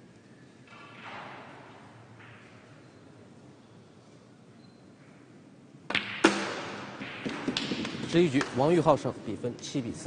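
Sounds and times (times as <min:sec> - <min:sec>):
billiard balls clacking: 0:05.9 - 0:08.6
cue striking ball: 0:05.9 - 0:08.6.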